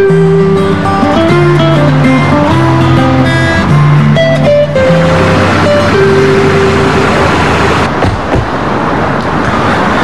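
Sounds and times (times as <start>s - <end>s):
background music long note: 0.0s - 7.9s
car driving and slowing: 0.0s - 10.0s.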